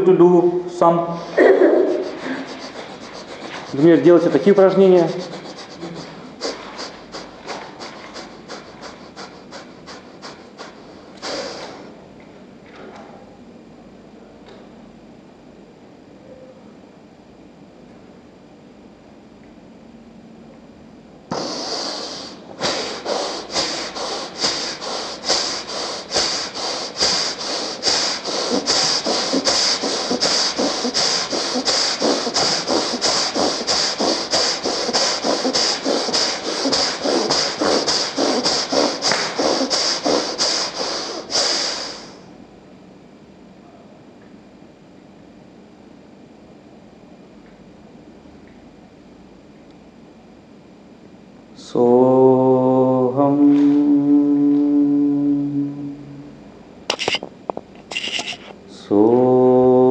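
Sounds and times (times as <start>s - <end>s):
person breathing forcefully: 1.2s - 12.0s, 21.3s - 42.3s.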